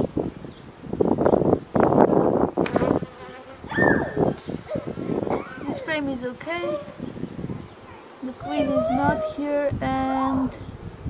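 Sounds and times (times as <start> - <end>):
bees buzzing: 1.0 - 11.0.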